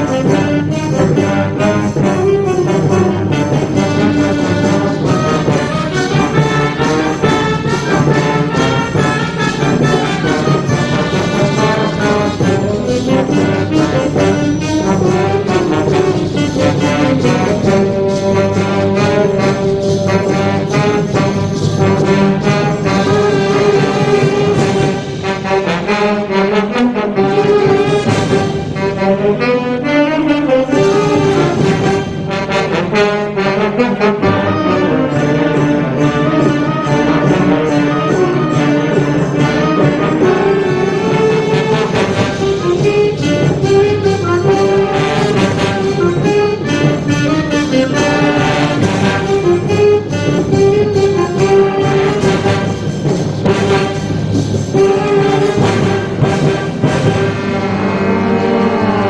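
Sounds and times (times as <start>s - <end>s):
brass band playing: 0.0s - 59.0s.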